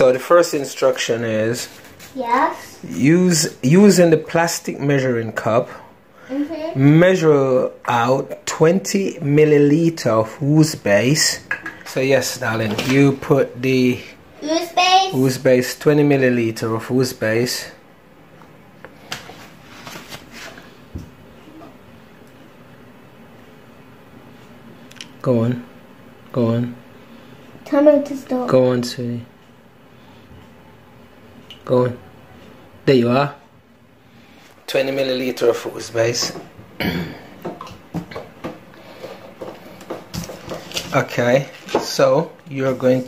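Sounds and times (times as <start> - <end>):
person clearing throat: 36.8 - 37.4.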